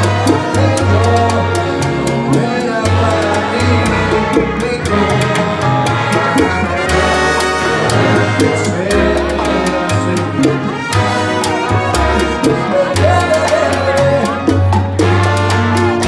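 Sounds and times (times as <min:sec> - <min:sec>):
congas and timbales: 0:00.0 - 0:16.0
trumpet and trombone section: 0:00.0 - 0:16.0
upright bass: 0:00.0 - 0:16.0.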